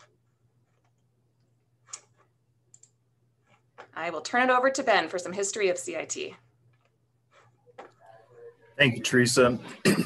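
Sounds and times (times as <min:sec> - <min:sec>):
computer mouse clicks: 0:00.7 - 0:04.0.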